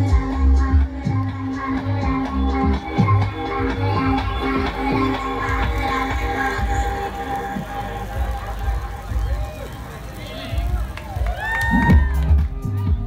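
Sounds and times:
crowd voices: 0.0 - 13.0
live music over sound system: 0.0 - 13.0.

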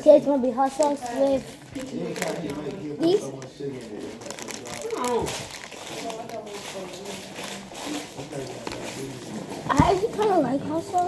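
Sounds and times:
plastic bag crinkling: 0.6 - 11.0.

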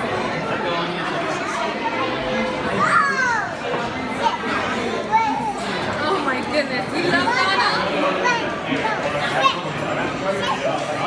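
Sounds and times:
dining room chatter: 0.0 - 11.0.

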